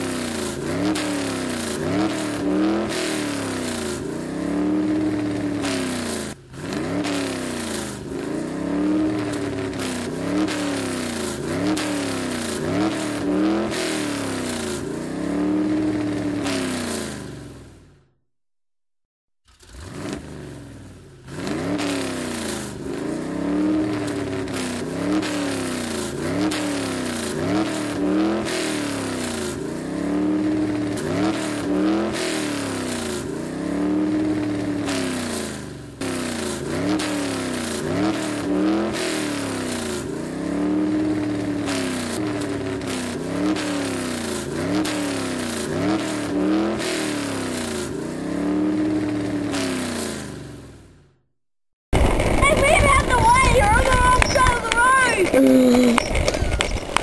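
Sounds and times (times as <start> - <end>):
racing car engine revving: 0.0 - 17.9, 19.5 - 50.8.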